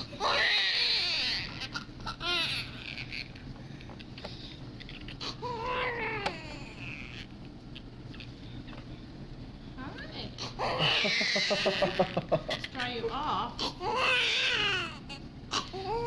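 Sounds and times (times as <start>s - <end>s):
newborn baby crying: 0.0s - 3.4s, 5.0s - 7.3s, 10.4s - 12.8s, 13.6s - 16.0s.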